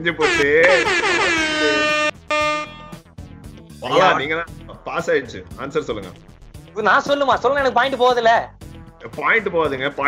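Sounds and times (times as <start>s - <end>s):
game show horn blast: 0.2s - 3.0s.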